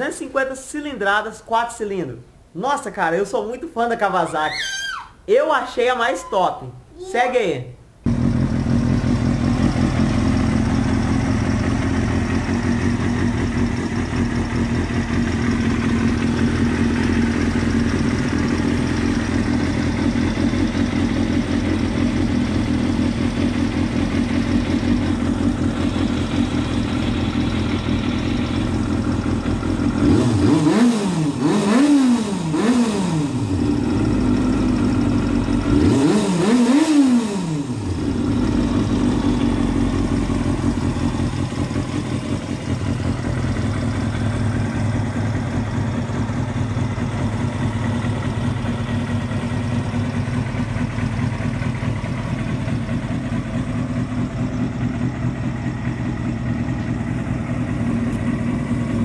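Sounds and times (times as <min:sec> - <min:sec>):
motorcycle engine idling and revving: 0:08.1 - 0:59.0.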